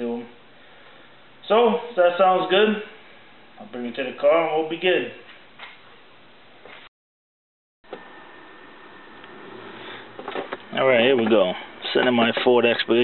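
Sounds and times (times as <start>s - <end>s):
man speaking: 10.7s - 13.0s.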